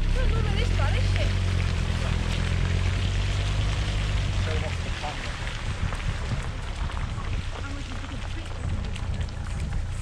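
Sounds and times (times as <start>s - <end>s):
car engine humming while driving: 0.0s - 10.0s.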